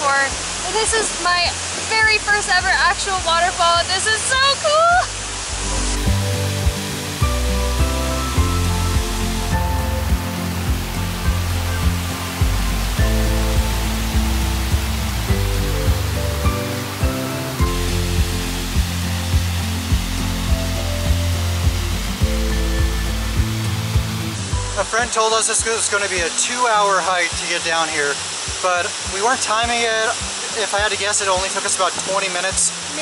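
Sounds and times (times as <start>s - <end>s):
waterfall rushing: 0.0s - 33.0s
music with bass and beat: 5.1s - 24.8s.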